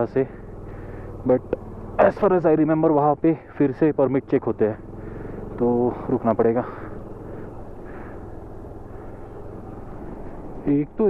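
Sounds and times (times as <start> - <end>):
motorcycle engine running: 0.0 - 11.0
road and wind noise: 0.0 - 11.0.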